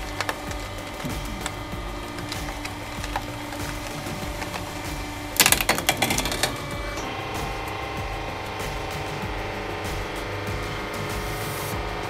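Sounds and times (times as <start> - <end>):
objects cracking under a press: 0.0 - 11.2
background music: 0.0 - 12.0.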